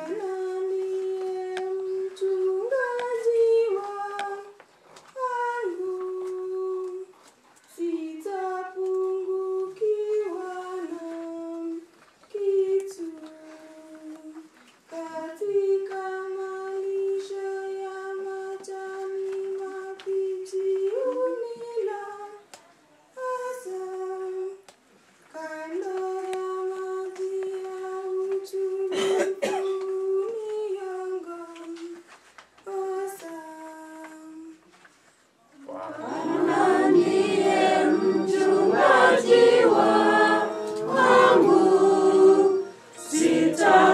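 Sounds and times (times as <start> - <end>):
woman singing a slow hymn: 0.0 - 24.7, 25.3 - 34.8, 35.6 - 43.9
cough: 28.9 - 29.9.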